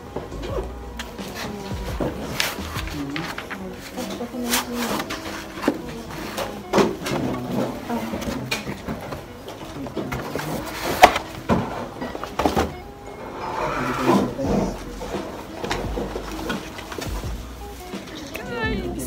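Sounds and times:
packaging scraping and rustling: 0:01.0 - 0:18.5.

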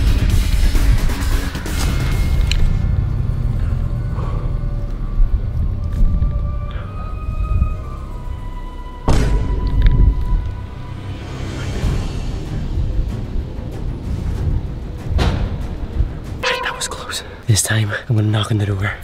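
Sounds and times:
suspenseful background music: 0:00.0 - 0:19.0.

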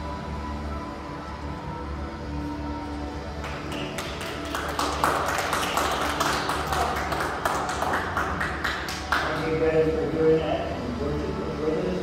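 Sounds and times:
people clapping: 0:03.3 - 0:09.8.

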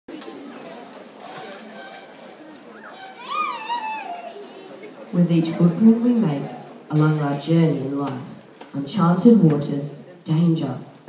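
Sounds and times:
audience murmuring: 0:00.1 - 0:11.0
high gliding cry: 0:03.0 - 0:04.6.

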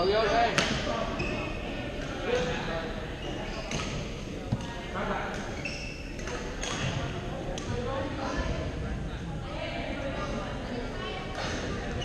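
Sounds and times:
players chatter: 0:00.0 - 0:12.0.

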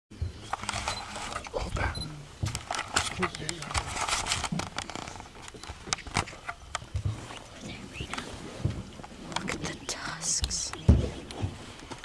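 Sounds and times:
elephant low rumbling: 0:06.3 - 0:11.9.

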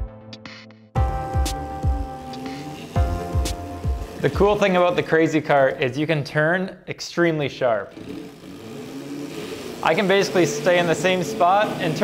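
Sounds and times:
electric kart motor hum: 0:01.0 - 0:06.0, 0:07.8 - 0:12.0.

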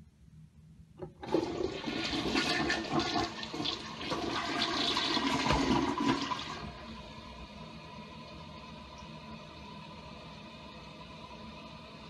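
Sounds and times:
toilet flush click: 0:01.0 - 0:06.9
toilet water rushing: 0:01.1 - 0:07.3.

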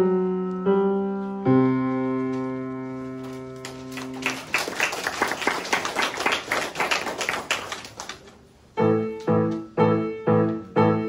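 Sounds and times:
piano chord: 0:00.0 - 0:04.3, 0:08.8 - 0:11.0
audience clapping: 0:03.2 - 0:08.4.

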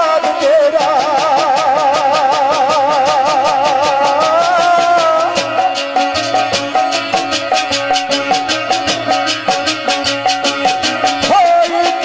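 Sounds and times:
folk melody with fast vibrato: 0:00.0 - 0:12.0
quick steady drum beat: 0:00.0 - 0:12.0.

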